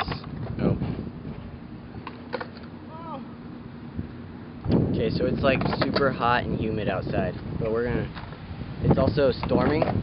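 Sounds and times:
steady background hum: 0.0s - 10.0s
person speaking: 2.8s - 3.4s.

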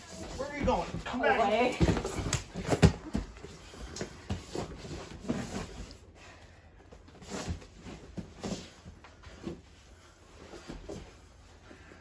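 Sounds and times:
bodies thudding on foam mats: 0.0s - 6.0s.

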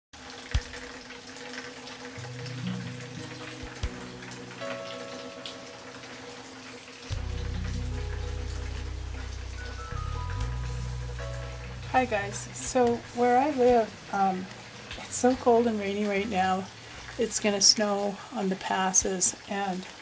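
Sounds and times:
rain drops clicking: 0.2s - 20.0s
soft music of held notes: 1.4s - 20.0s
deep bass line: 7.1s - 13.9s.

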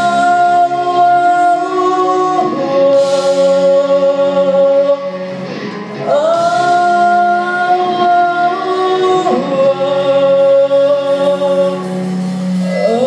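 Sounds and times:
live band with guitars: 0.0s - 13.0s.

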